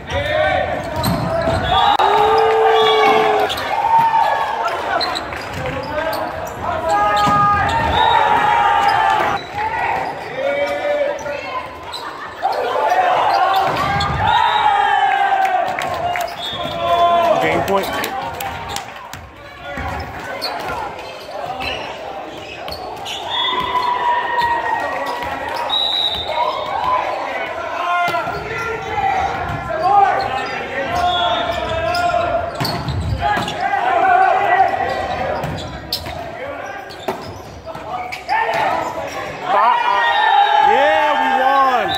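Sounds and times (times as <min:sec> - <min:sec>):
players and spectators shouting: 0:00.0 - 0:37.0, 0:37.6 - 0:41.9.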